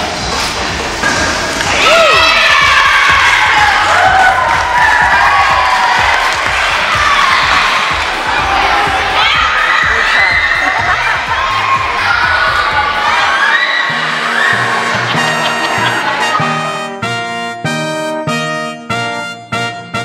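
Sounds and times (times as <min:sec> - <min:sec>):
young girls cheering and shouting: 0:01.7 - 0:16.5.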